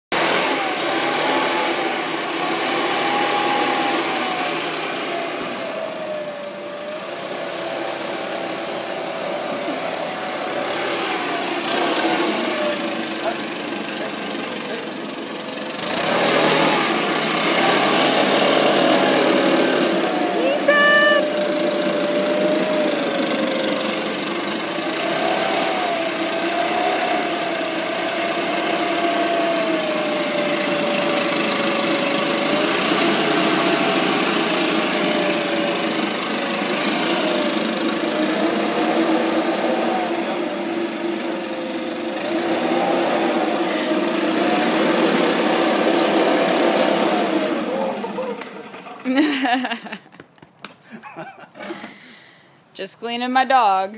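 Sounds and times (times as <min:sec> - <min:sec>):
leaf blower running: 0:00.1 - 0:50.1, 0:51.3 - 0:52.4.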